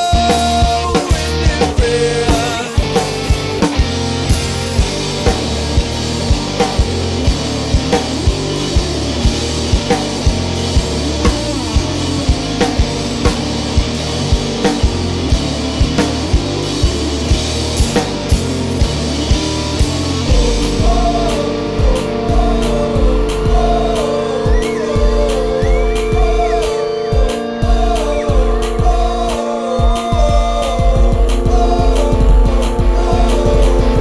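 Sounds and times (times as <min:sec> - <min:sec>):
higher melodic line: 0:00.0 - 0:34.0
rock band playing: 0:00.0 - 0:34.0.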